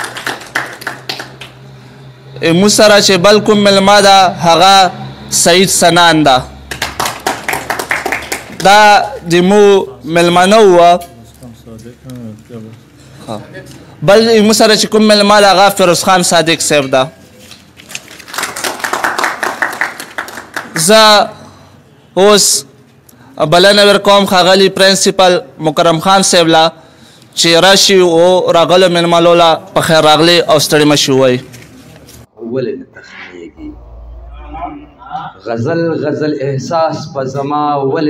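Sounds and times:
audience hand-clapping: 0.0 - 1.6, 6.7 - 8.8, 18.0 - 20.9
scattered applause: 0.0 - 1.7, 6.7 - 8.7, 18.0 - 20.9.

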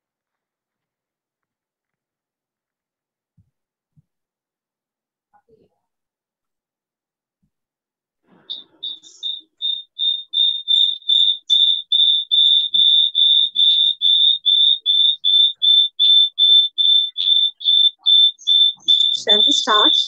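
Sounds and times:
rapid high-pitched electronic beeps: 8.5 - 20.0.

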